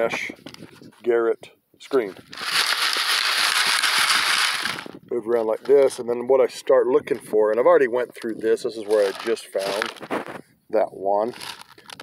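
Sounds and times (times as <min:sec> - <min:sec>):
rock chips rattling on mesh screen: 0:02.4 - 0:04.9.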